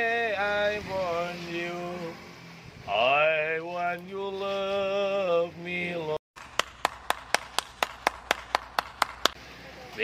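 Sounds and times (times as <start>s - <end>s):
person clapping hands: 6.4s - 9.4s.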